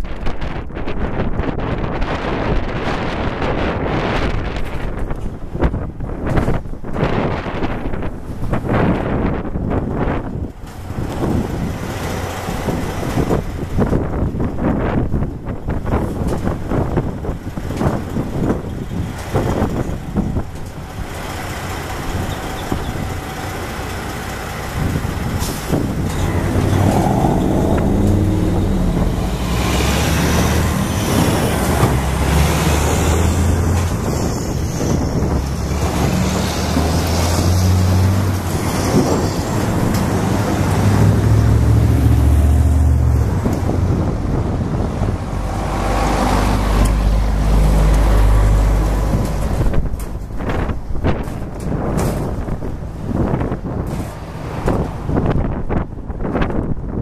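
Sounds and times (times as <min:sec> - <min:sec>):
wind buffeting microphone: 0:00.0 - 0:57.0
vehicle engine running: 0:18.0 - 0:32.5.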